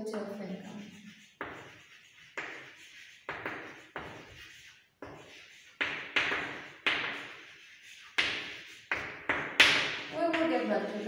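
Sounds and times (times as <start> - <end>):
chalk tapping and scraping on blackboard: 0.6 - 11.0.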